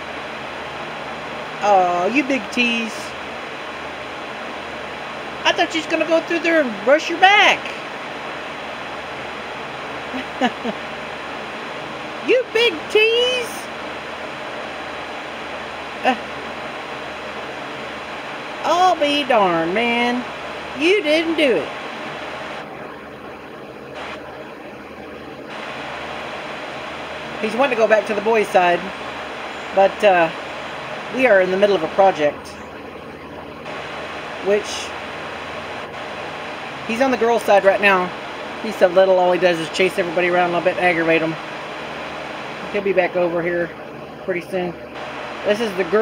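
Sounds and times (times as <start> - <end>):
steady rushing noise: 0.0 - 46.0.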